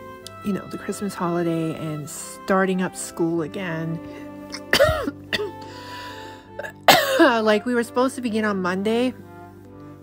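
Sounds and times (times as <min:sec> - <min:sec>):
soft background music: 0:00.0 - 0:10.0
woman coughing: 0:04.5 - 0:05.6, 0:06.6 - 0:07.4.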